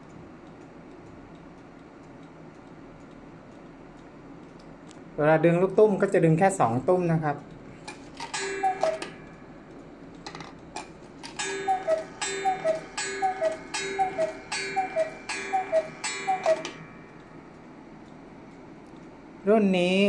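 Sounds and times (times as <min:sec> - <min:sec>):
cuckoo clock call: 0:08.2 - 0:09.6, 0:11.2 - 0:17.6.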